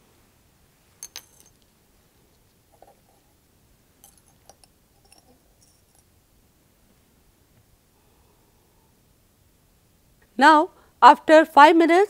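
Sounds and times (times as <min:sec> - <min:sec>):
light clicks of small glassware: 0:04.0 - 0:06.1.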